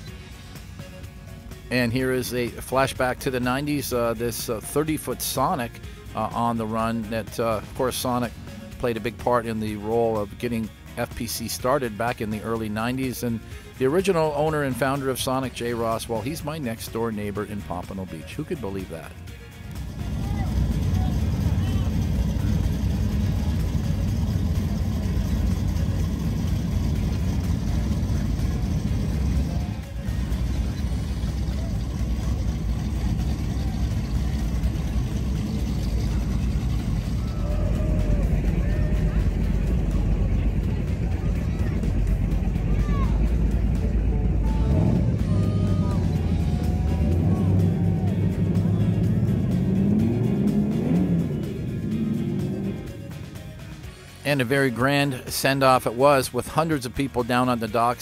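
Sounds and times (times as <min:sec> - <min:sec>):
background music: 0:00.0 - 0:58.0
powerboat engines idling: 0:00.0 - 0:58.0
engine revving: 0:19.7 - 0:53.8.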